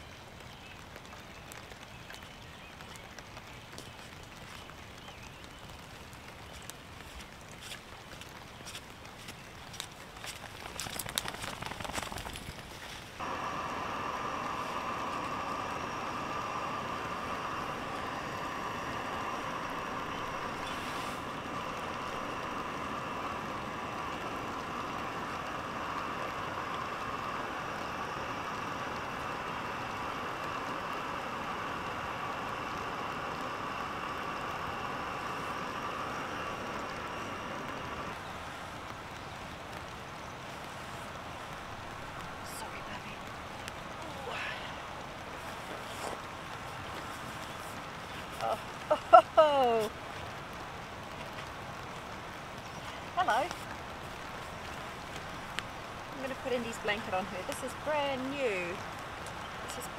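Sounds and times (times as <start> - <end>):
footsteps rustling through grass: 6.3 - 13.2, 20.5 - 21.3
camping stove hissing: 13.1 - 59.9.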